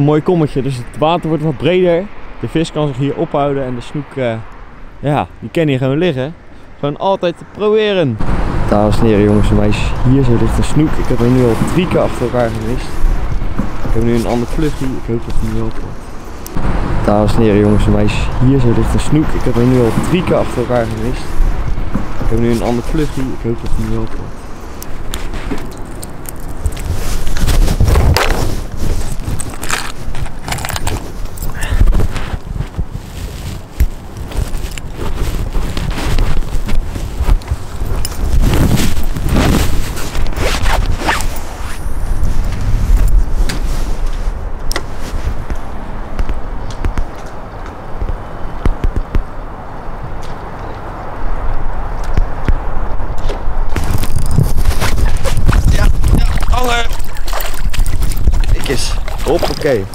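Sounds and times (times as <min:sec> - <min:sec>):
low rumble: 0:08.1 - 0:24.5
clothing rubbing on microphone: 0:18.8 - 0:46.4, 0:53.7 - 0:59.9.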